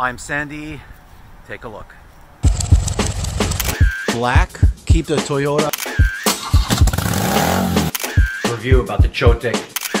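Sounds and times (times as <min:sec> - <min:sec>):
motorcycle engine popping: 0:02.4 - 0:03.7.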